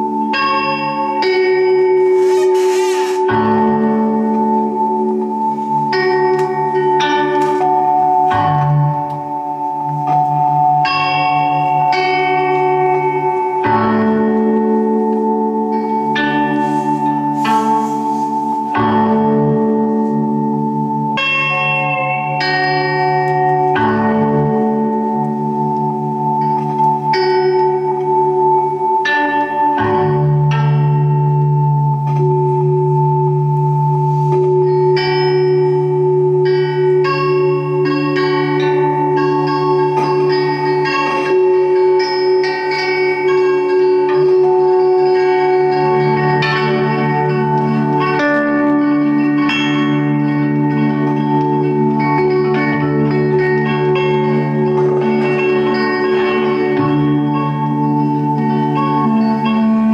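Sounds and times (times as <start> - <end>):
steel guitar chords ringing: 0.0 - 59.9.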